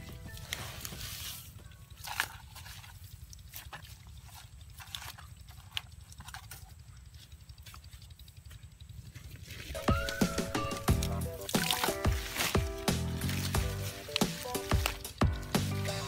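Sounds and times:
faint background music: 0:00.0 - 0:03.3, 0:09.6 - 0:16.0
clicks and rustles of grass and mud: 0:00.0 - 0:16.0.

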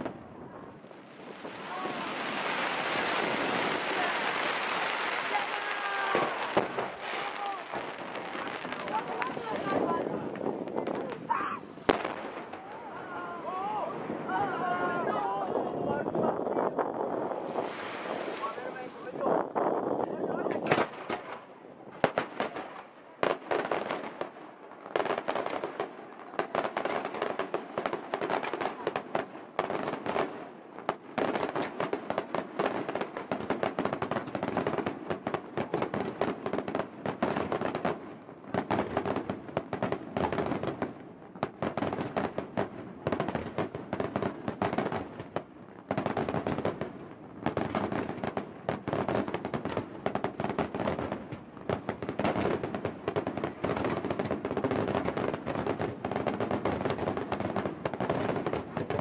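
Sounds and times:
fireworks bangs and crackles: 0:00.0 - 0:59.0.

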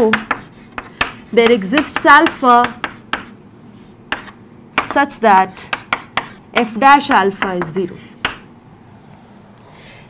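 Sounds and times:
chalk on chalkboard: 0:00.0 - 0:06.4.

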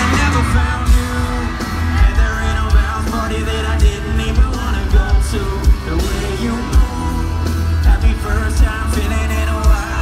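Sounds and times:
heavy bass and drum beat: 0:00.0 - 0:10.0
live band through pa: 0:00.0 - 0:10.0
person singing: 0:00.0 - 0:10.0.

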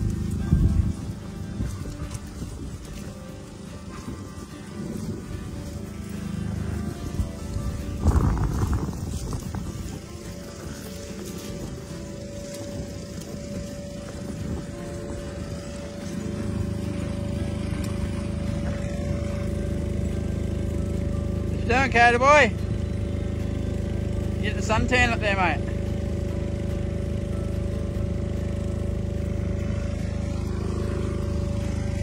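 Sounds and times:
background music with held tone: 0:00.0 - 0:32.0
low steady rumble: 0:00.0 - 0:32.0.

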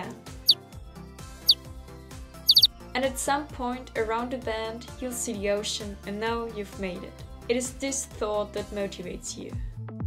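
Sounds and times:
background music: 0:00.0 - 0:10.0
high chirps sweeping down: 0:02.5 - 0:02.7.

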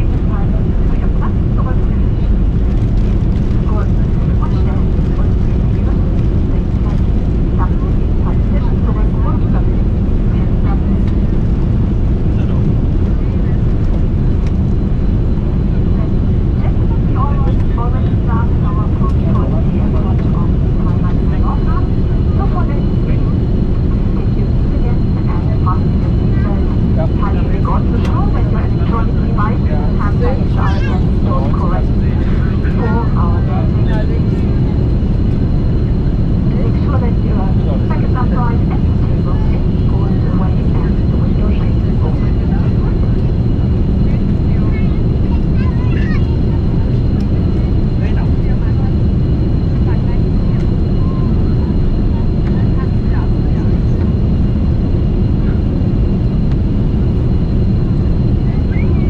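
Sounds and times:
airplane cabin roar: 0:00.0 - 0:59.0
indistinct passenger chatter: 0:00.0 - 0:59.0.

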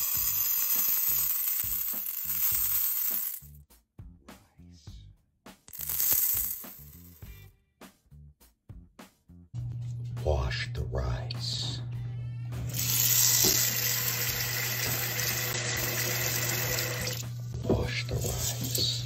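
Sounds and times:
rice pouring into metal pot: 0:12.8 - 0:17.2.

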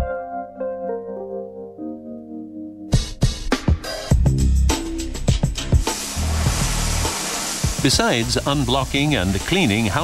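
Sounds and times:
background music with bass line: 0:02.9 - 0:10.0
high-pressure water jet hissing: 0:05.7 - 0:10.0.

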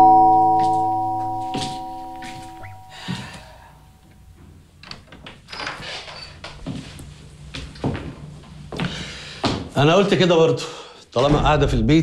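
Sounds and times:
bell-like music chord ringing: 0:00.0 - 0:03.8.

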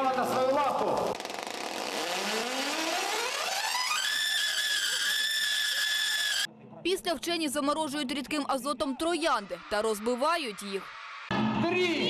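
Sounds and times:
tesla coil buzzing note: 0:01.7 - 0:04.1.

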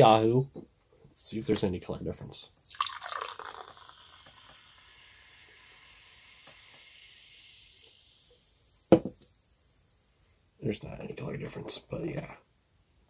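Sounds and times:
soda pouring into glass: 0:02.6 - 0:09.8
soda fizzing: 0:02.6 - 0:10.0.

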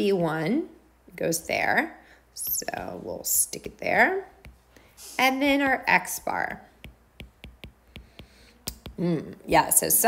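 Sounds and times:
stylus tapping on glass screen: 0:06.8 - 0:09.0.

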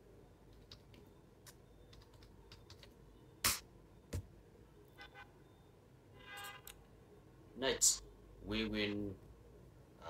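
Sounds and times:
keystrokes on computer keyboard: 0:00.5 - 0:03.6.

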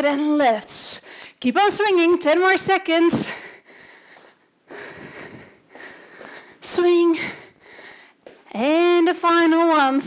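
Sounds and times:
woman breathing hard: 0:01.0 - 0:01.4, 0:03.2 - 0:08.4.

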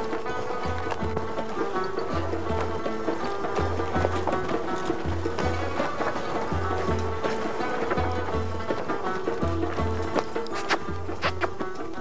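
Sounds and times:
music with steady beat: 0:00.0 - 0:12.0.

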